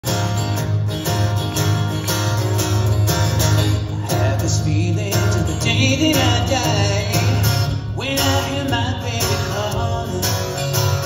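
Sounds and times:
acoustic guitar strumming: 0:00.0 - 0:11.0
man singing: 0:03.8 - 0:11.0.

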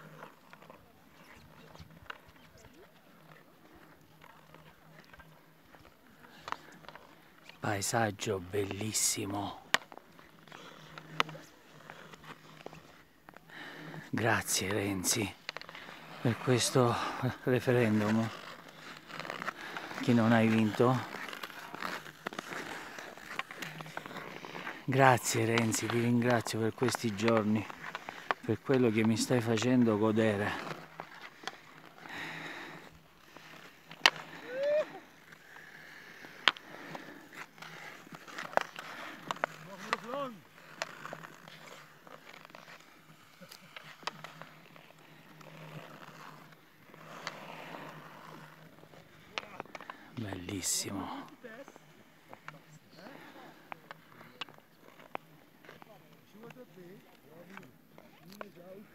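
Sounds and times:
skates clicking on ice: 0:00.0 - 0:58.9.

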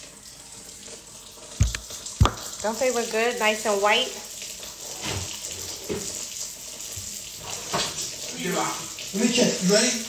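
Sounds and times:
tap running into sink: 0:01.5 - 0:02.7, 0:05.0 - 0:08.2
water splash: 0:01.6 - 0:02.9.

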